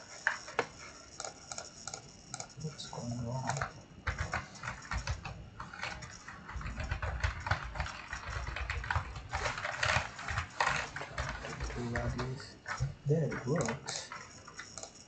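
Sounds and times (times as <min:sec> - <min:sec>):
computer keyboard typing: 0:00.0 - 0:15.0.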